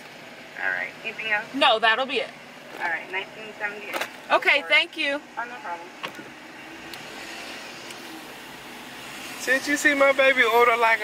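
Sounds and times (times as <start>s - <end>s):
car engine and tyres from inside: 0.0s - 11.0s.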